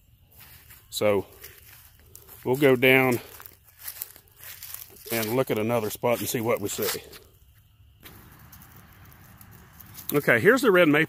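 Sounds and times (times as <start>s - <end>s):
footsteps on dry leaves: 0.2s - 7.3s, 8.0s - 10.8s.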